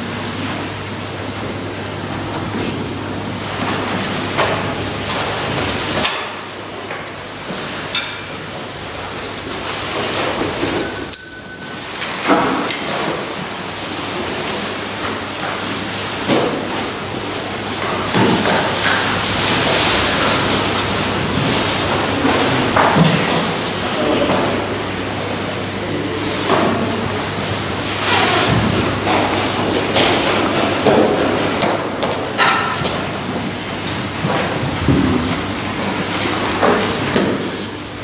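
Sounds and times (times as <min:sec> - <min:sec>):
room noise hiss: 0:00.0 - 0:38.0
people shuffling: 0:08.4 - 0:37.8
brief high ring: 0:10.8 - 0:12.9.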